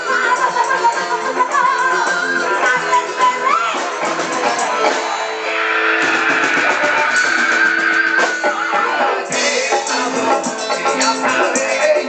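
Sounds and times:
live band playing: 0.0s - 12.0s
electric guitar high note: 4.4s - 9.4s.

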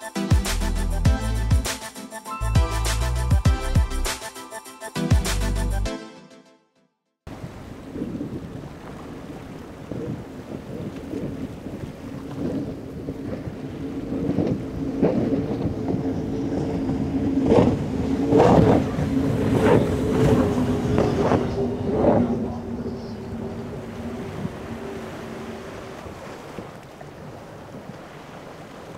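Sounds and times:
outboard engine drone: 7.3s - 28.9s
wind and water rushing: 7.3s - 28.9s.

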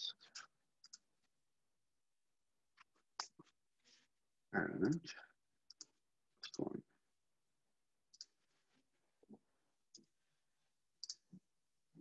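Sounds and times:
keyboard and mouse clicks: 0.8s - 1.1s, 5.7s - 6.7s, 8.1s - 8.4s, 11.0s - 11.4s.

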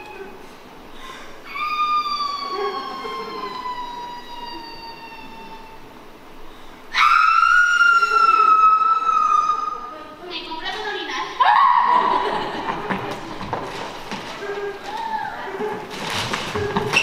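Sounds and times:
high wail falling in pitch: 1.5s - 5.9s, 6.9s - 9.9s, 11.4s - 12.4s.

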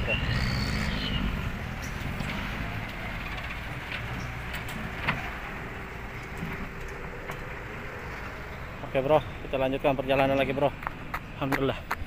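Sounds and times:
distant dump truck engine rumble: 0.0s - 12.0s
outdoor air noise: 0.0s - 12.0s.

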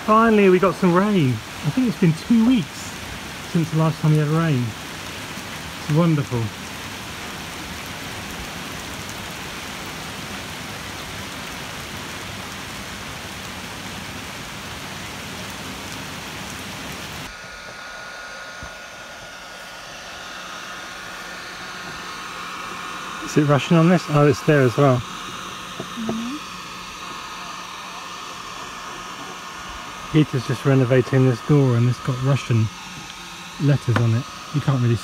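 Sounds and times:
steady hum: 0.0s - 35.0s
steady rain falling: 0.0s - 35.0s.

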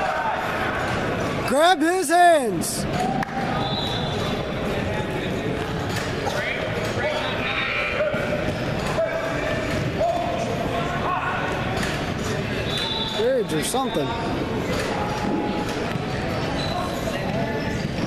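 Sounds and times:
echoing voices and shouts: 0.0s - 5.3s, 6.2s - 15.7s
shoes squeaking on mat: 12.2s - 18.0s.

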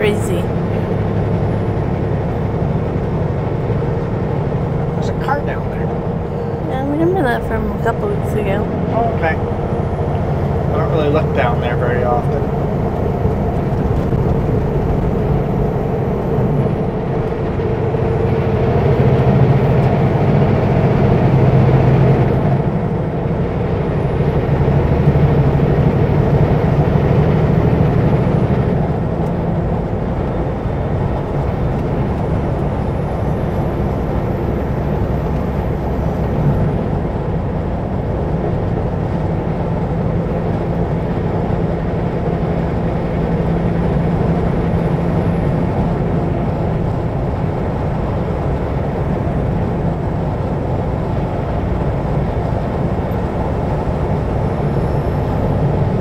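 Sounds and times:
road noise: 0.0s - 56.0s
truck diesel engine droning: 0.0s - 56.0s.

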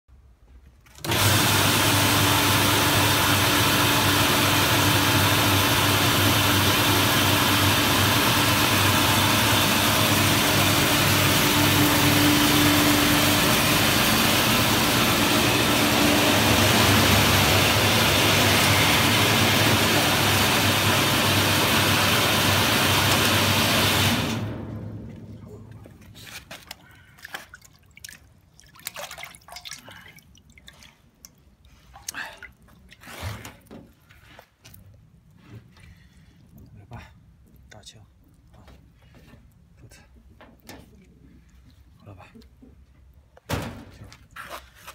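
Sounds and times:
machine motor hum: 1.0s - 26.2s
faint drips: 26.6s - 33.2s.

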